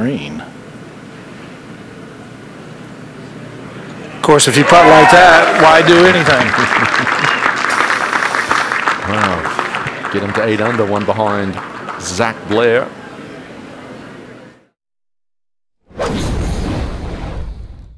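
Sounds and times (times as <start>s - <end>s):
crowd applauding: 4.2s - 13.0s.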